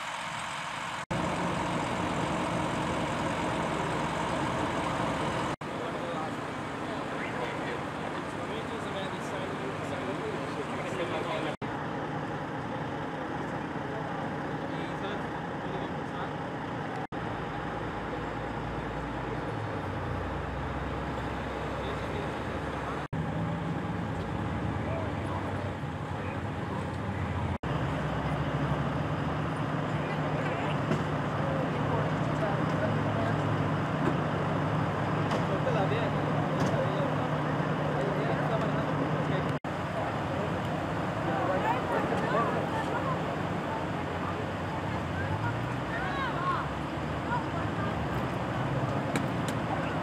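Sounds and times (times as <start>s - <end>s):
vehicle engines idling: 0.0s - 50.0s
faint indistinct voices: 35.2s - 50.0s.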